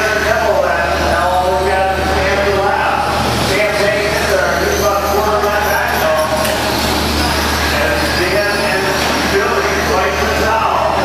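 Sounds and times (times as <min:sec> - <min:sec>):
rc truck motors and tyres: 0:02.3 - 0:11.0.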